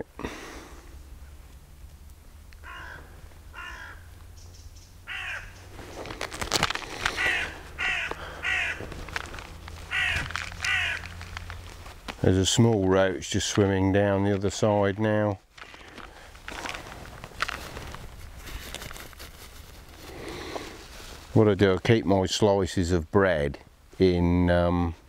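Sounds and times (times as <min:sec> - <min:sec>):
crow cawing: 0:02.6 - 0:04.1, 0:05.0 - 0:05.7, 0:07.1 - 0:08.9, 0:09.9 - 0:11.2.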